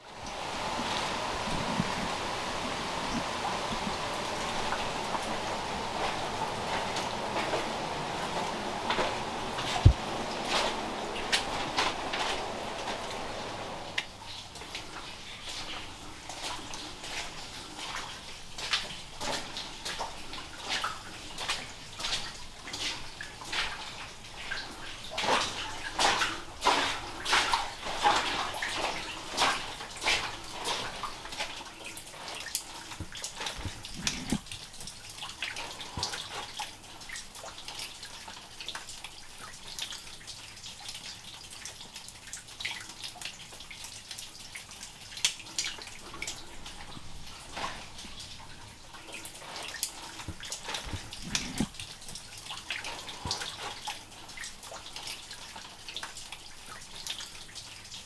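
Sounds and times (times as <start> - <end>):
water dripping and splashing: 0.0 - 58.0.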